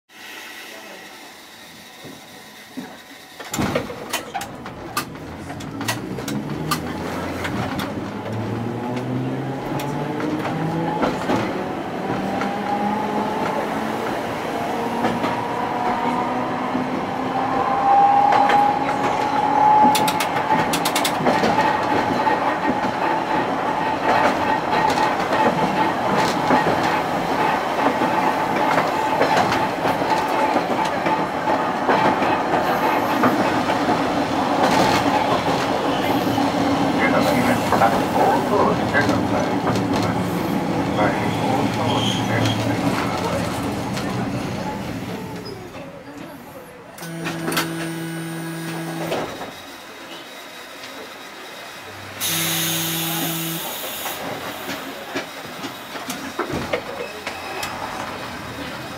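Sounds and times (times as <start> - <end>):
wheels clicking over rail joints: 2.8 - 12.6, 18.4 - 35.9
tram traction motor whining: 34.9 - 58.9.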